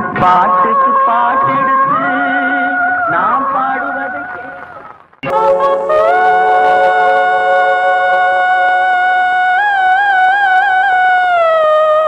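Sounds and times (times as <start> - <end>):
sustained wavering melodic note: 5.2 - 10.1.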